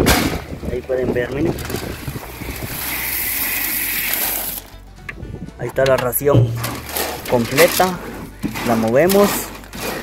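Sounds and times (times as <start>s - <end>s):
corn kernels pouring into metal trough: 1.6s - 4.6s, 6.7s - 10.0s.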